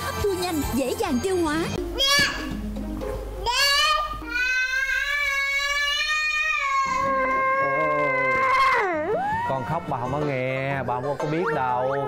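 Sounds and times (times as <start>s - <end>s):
child screaming: 3.5s - 9.5s.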